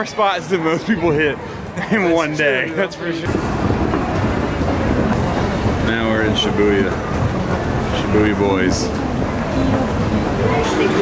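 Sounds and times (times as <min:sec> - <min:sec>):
murmur of voices: 0:00.0 - 0:11.0
low rumble: 0:03.3 - 0:11.0.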